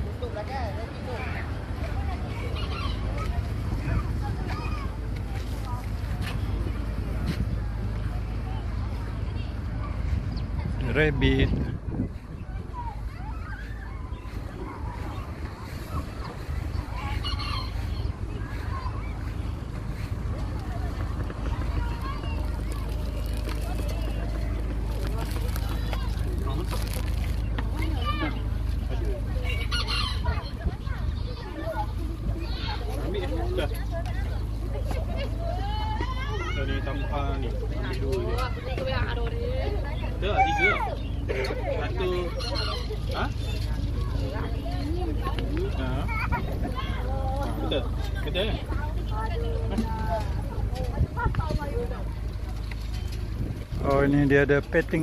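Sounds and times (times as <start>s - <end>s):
faint voices: 0.0s - 55.0s
steady low hum: 0.0s - 55.0s
wind buffeting microphone: 2.0s - 34.7s, 42.8s - 55.0s.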